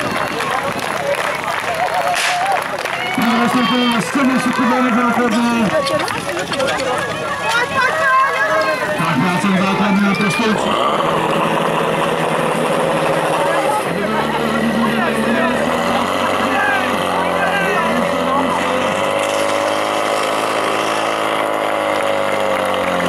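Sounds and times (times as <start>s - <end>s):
pump engine running hard: 0.0s - 23.0s
people shouting: 1.7s - 11.6s, 13.2s - 19.2s.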